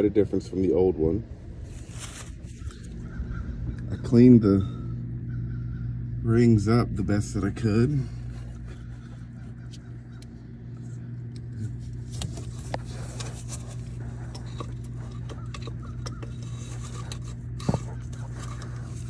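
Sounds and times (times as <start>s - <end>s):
steady low hum: 0.0s - 19.0s
light clicks and scrapes: 8.2s - 19.0s.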